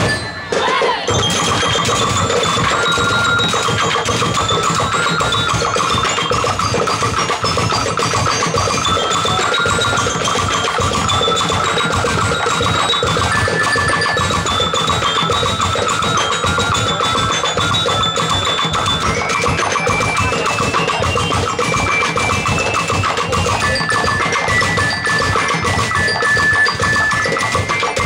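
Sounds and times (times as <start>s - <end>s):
percussion band drumming: 0.0s - 28.0s.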